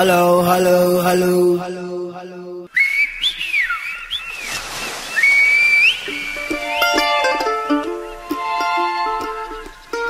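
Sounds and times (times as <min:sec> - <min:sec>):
person chanting: 0:00.0 - 0:02.7
person whistling: 0:02.7 - 0:03.8.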